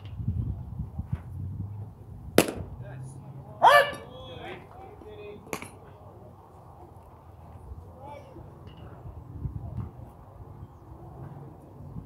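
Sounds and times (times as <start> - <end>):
distant voices of players: 1.8 - 12.0.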